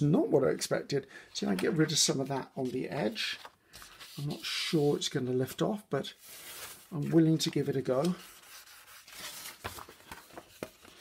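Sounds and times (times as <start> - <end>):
paper rubbed by hand: 8.2 - 9.6.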